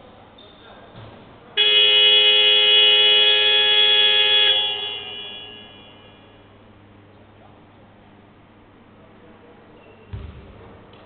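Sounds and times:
scoreboard horn blast: 1.6 - 6.2.

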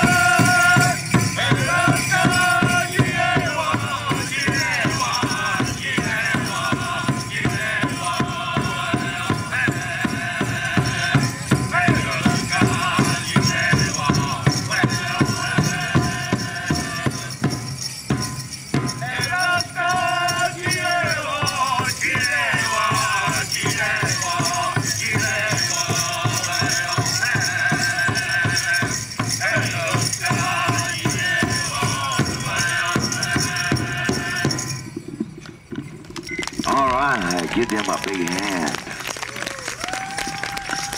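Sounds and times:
men singing: 0.0 - 17.9, 18.8 - 34.9, 36.6 - 38.8
drum steady beat: 0.0 - 35.1, 35.7 - 39.0.

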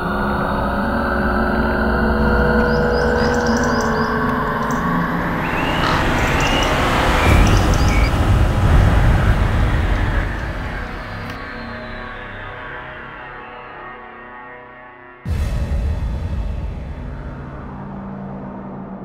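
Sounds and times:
low rumbling drone: 0.0 - 13.7, 15.3 - 19.0.

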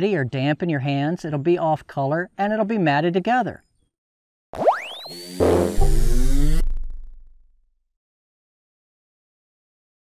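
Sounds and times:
synthesized rising sweep: 4.6 - 7.4
synth chord hit: 4.9 - 7.5
deep bass: 5.4 - 7.6.

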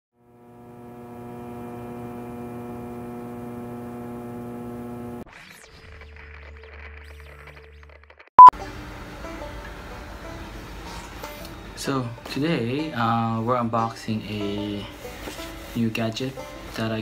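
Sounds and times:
buzzy electrical hum: 0.2 - 5.2.

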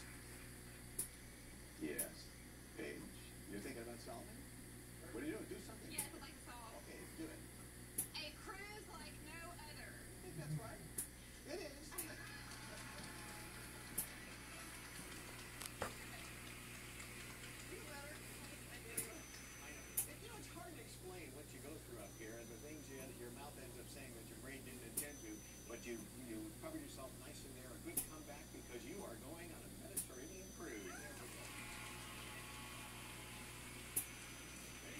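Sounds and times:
indistinct television voices: 0.0 - 34.9
television music: 5.0 - 7.3, 11.5 - 34.9
studio audience applause: 12.0 - 18.8, 31.0 - 33.4.

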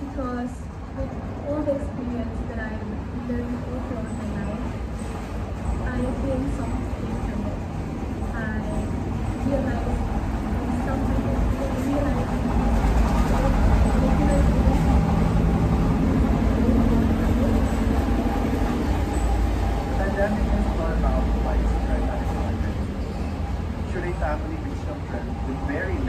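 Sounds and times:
vehicle engine rumble: 0.0 - 26.0.

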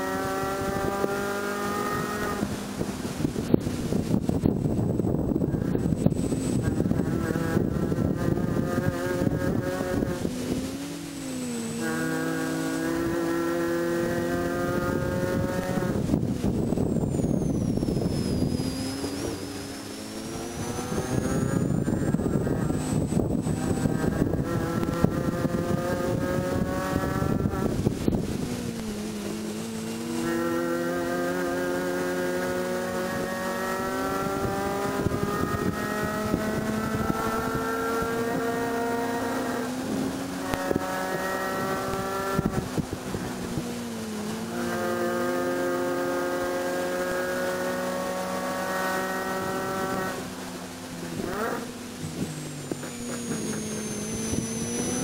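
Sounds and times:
car engine revving at high rpm: 0.0 - 55.0.

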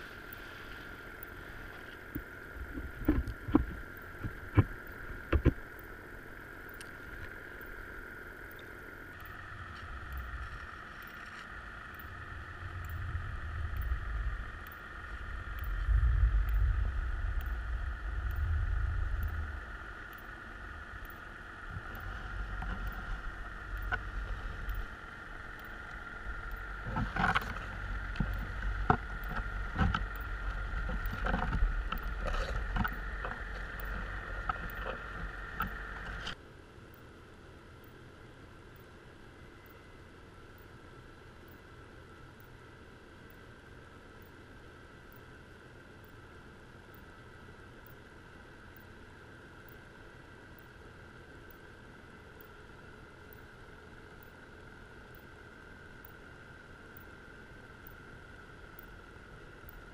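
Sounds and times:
low rumbling water movement: 0.0 - 36.4
underwater drone: 0.0 - 59.9
creels knocking: 21.0 - 36.4.

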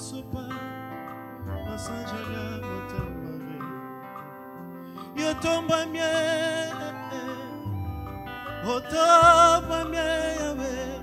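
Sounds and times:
bass guitar: 0.0 - 11.0
guitar notes: 0.0 - 11.0
held keyboard chords: 0.0 - 11.0.

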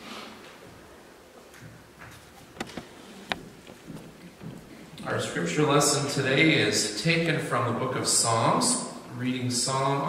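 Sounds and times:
faint room hum: 0.0 - 10.0
clicks and knocks on wooden lectern: 1.6 - 4.7.

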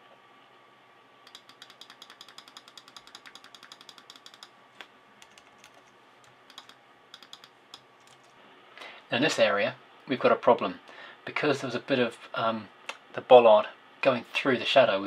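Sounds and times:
mouse and keyboard clicking: 1.3 - 8.3.

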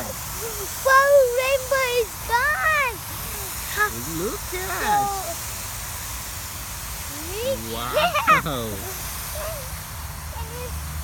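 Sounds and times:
hose spraying water mist: 0.0 - 11.0.

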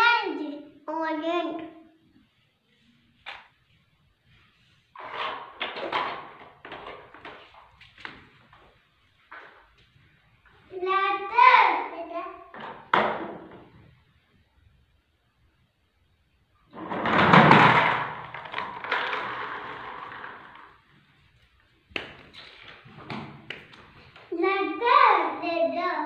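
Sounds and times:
young children's voices: 0.0 - 2.0, 10.7 - 12.5, 24.3 - 26.0.

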